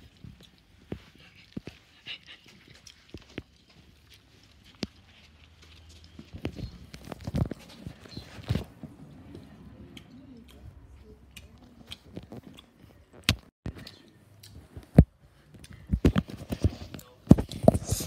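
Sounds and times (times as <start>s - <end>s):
close-up chewing: 0.0s - 18.0s.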